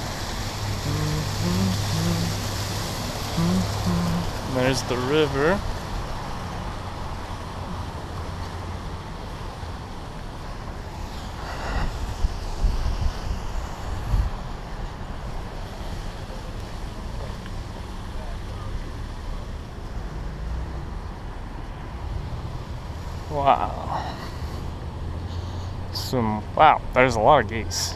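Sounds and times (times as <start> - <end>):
cars passing by: 0.0 - 27.9
wind buffeting microphone: 11.2 - 15.7.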